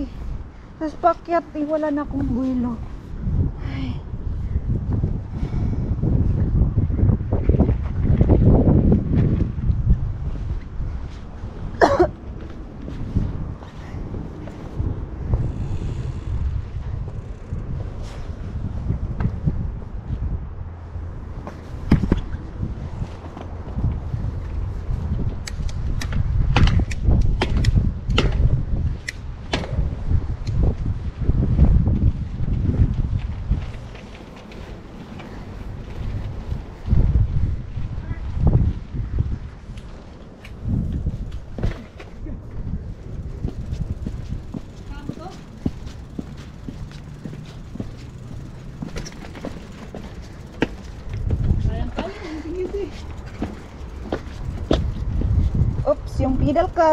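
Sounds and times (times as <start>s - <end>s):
wind rumbling on microphone: 0.0s - 56.9s
bike rolling over dirt path: 26.2s - 55.8s
bike frame rattling: 40.8s - 55.8s.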